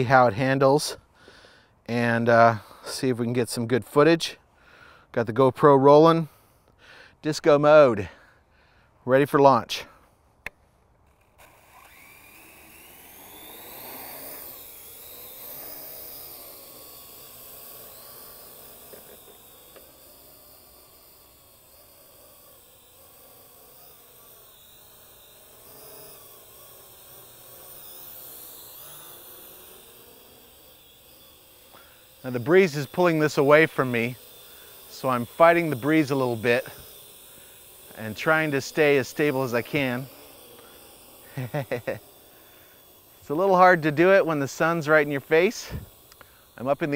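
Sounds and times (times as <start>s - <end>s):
drone motors whining: 9.9s - 46.9s.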